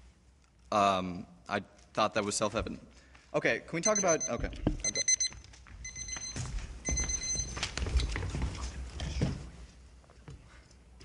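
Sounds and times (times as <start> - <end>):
electronic timer beeping: 3.8 - 7.6
footsteps on wooden stage: 4.4 - 10.6.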